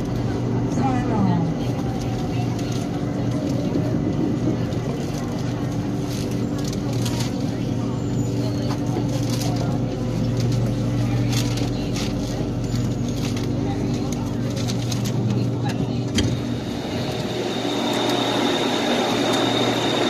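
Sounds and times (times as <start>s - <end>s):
train electrical hum: 0.0s - 20.0s.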